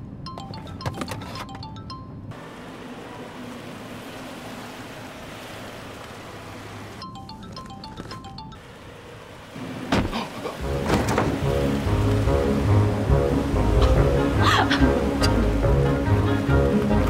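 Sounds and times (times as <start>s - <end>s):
mallet percussion notes: 0.3s - 2.3s, 7.0s - 8.6s.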